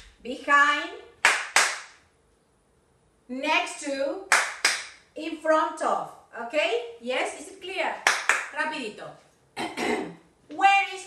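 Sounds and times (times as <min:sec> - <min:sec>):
hand claps: 0:01.2 - 0:02.0, 0:04.3 - 0:05.0, 0:08.0 - 0:08.5.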